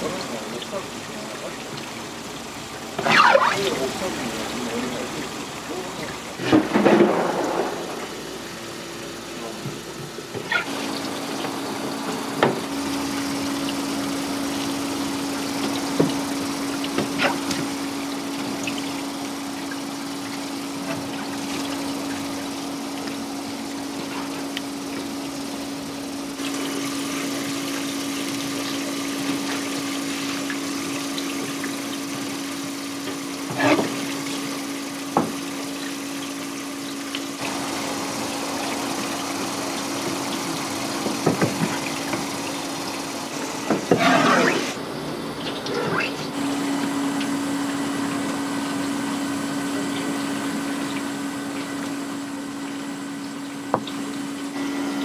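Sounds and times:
tap water running onto board: 9.4 - 44.8, 46.8 - 54.5.

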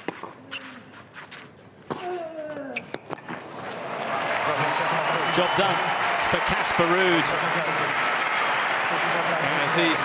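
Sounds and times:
applause and cheering: 3.6 - 10.0
crowd voices reacting: 3.8 - 10.0.

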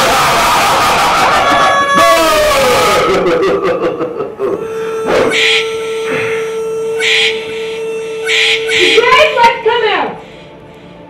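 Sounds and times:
held tone: 4.4 - 9.7.

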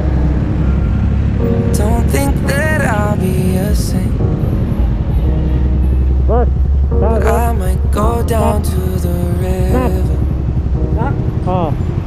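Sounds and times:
minibus passing: 0.0 - 12.0
vehicle engines rumbling in traffic: 0.0 - 12.0.

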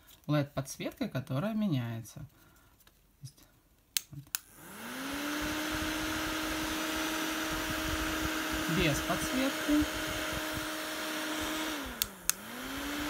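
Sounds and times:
mini fan motor whirring: 4.4 - 13.0
fan button clicks: 11.9 - 12.5.

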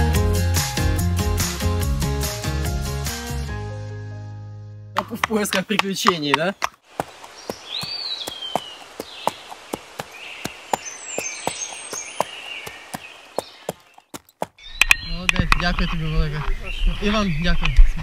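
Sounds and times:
horse hooves clopping on asphalt: 5.0 - 14.6
bird calls: 5.4 - 18.0.

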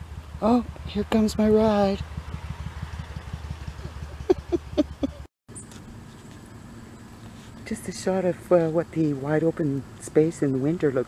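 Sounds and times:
vehicle engine running: 0.0 - 11.0
man laughing: 3.8 - 5.3.

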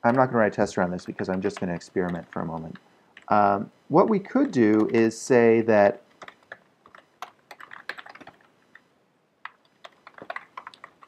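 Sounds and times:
typing on computer keyboard: 0.0 - 5.1, 6.2 - 8.8, 9.4 - 11.0.

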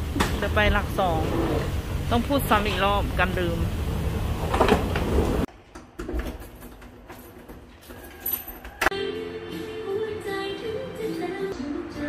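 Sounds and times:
wheeled suitcase rolling: 1.2 - 1.8, 4.0 - 5.5.

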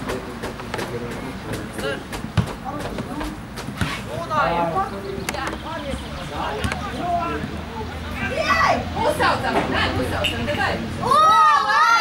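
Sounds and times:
distant voices: 0.0 - 12.0.

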